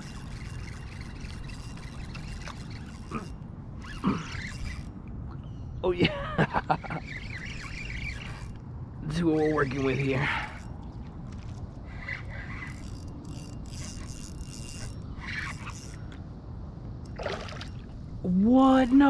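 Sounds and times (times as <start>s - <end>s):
fishing reel ratcheting whirr: 0.0s - 5.0s, 6.7s - 16.2s.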